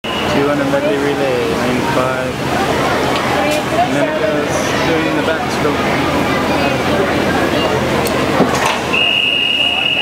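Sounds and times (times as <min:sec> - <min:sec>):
crowd chatter echoing: 0:00.0 - 0:10.0.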